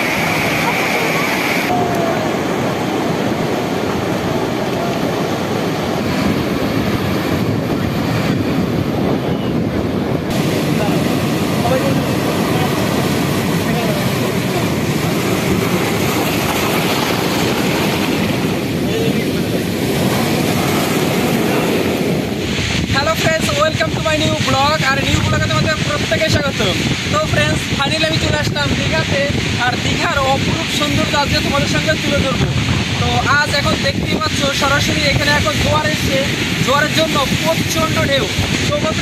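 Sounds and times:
waves breaking on rocks: 0:10.3 - 0:39.0.

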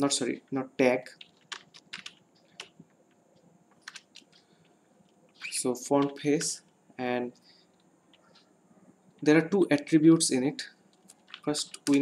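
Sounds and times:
typing on keyboard: 0:01.1 - 0:06.5, 0:10.9 - 0:12.0.

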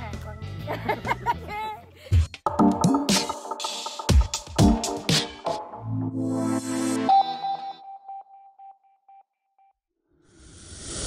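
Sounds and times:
electronic music: 0:02.4 - 0:08.8.

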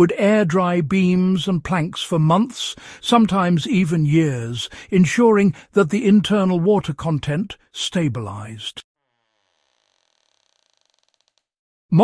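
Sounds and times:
person narrating: 0:00.0 - 0:08.8.

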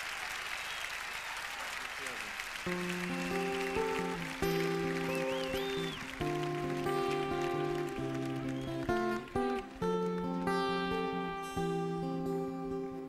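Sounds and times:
guitar chords ringing: 0:02.7 - 0:13.0.

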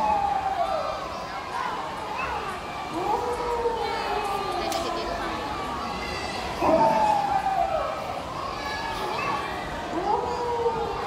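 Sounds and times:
child howling over loudspeakers: 0:00.0 - 0:11.0.

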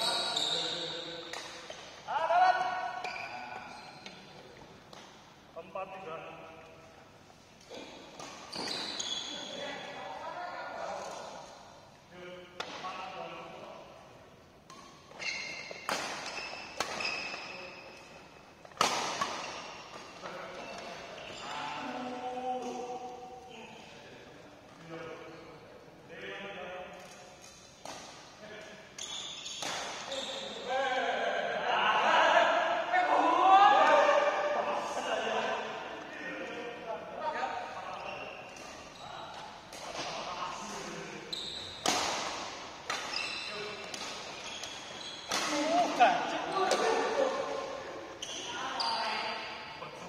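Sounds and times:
shoes squeaking on court: 0:00.0 - 0:02.0, 0:03.0 - 0:04.4, 0:08.2 - 0:09.6, 0:14.8 - 0:21.8, 0:29.0 - 0:30.7, 0:41.3 - 0:42.0, 0:42.8 - 0:49.7
racket striking shuttlecock: 0:18.7 - 0:20.0, 0:41.8 - 0:43.1.

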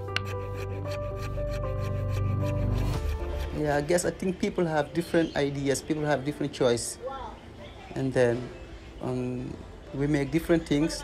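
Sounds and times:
background music with held notes: 0:00.0 - 0:11.0
fret saw cutting thin board: 0:00.1 - 0:03.6.

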